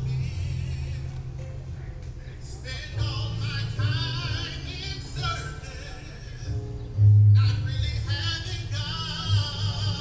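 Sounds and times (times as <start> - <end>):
music: 0.0 - 10.0.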